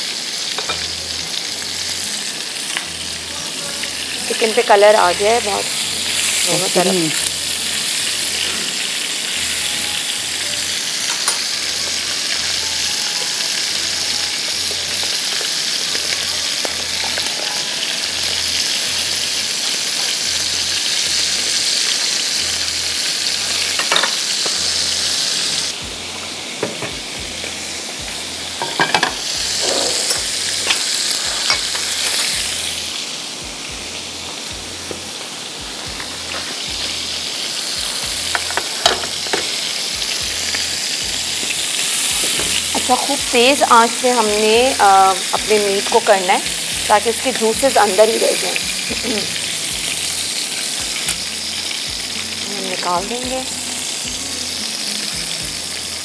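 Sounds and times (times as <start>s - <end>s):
chicken sizzling in oil: 0.0s - 56.0s.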